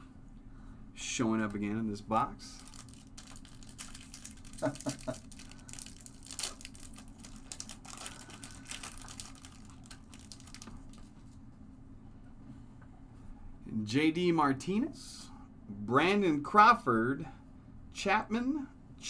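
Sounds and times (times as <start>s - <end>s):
wrapper crinkling and tearing: 2.5s - 11.2s.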